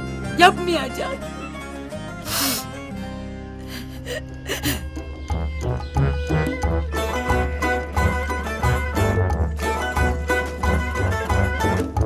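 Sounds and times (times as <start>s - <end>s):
soft background music: 0.0s - 12.0s
woman crying: 3.6s - 5.0s.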